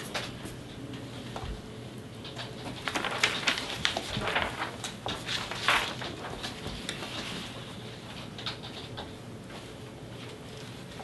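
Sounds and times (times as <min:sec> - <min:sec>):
paper rustling and shuffling: 0:02.2 - 0:11.0.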